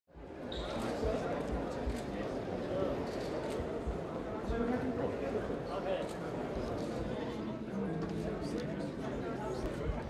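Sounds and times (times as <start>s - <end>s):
crowd chatter: 0.1s - 10.0s.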